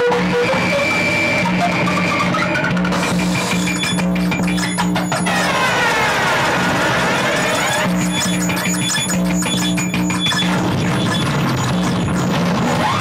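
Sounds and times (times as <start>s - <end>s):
rapid electronic clicks: 0.0s - 13.0s.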